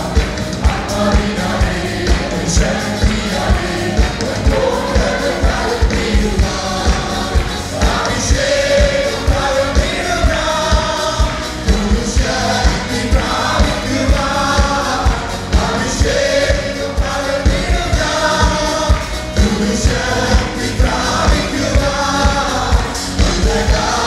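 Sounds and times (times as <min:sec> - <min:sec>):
electronic keyboard: 0:00.0 - 0:24.0
people singing worship song: 0:00.0 - 0:24.0
steady drum beat: 0:00.0 - 0:24.0.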